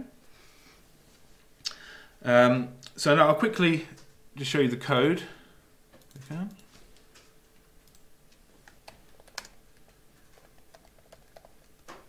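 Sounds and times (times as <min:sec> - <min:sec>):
computer keyboard typing: 0:07.8 - 0:08.0, 0:08.6 - 0:12.0.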